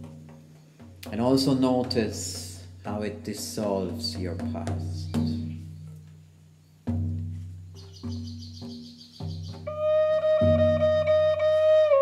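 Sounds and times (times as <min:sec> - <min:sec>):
deep hand drum beats: 0:00.0 - 0:12.0
flute long held note: 0:09.7 - 0:12.0
high pulsing whistle: 0:09.7 - 0:12.0.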